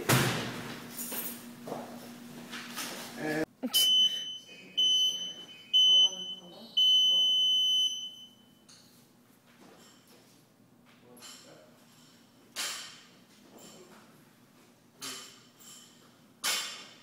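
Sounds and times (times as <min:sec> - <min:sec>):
timer beeps: 0:03.8 - 0:08.6.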